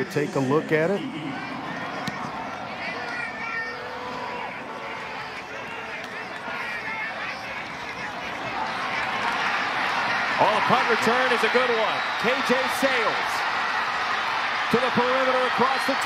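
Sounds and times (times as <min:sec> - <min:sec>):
stadium crowd noise: 0:00.0 - 0:16.0.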